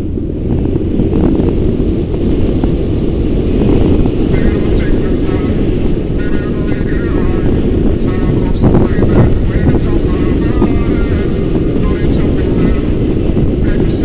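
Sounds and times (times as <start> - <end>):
wind buffeting: 0.0 - 14.0.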